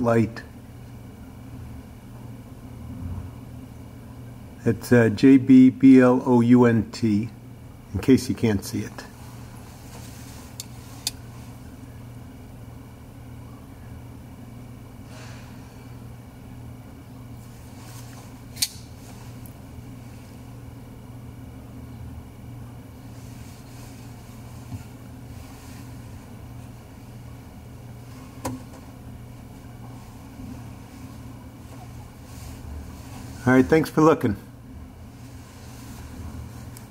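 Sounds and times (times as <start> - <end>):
low background hum: 0.0 - 36.9
folding knife clicks: 18.6 - 18.9.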